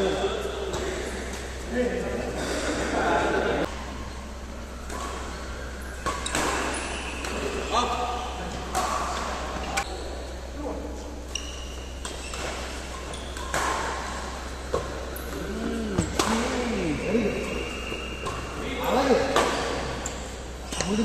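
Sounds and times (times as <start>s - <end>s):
shoes squeaking on court floor: 4.0s - 10.5s, 11.2s - 21.0s
rackets striking shuttlecock: 4.8s - 7.6s, 11.5s - 15.4s.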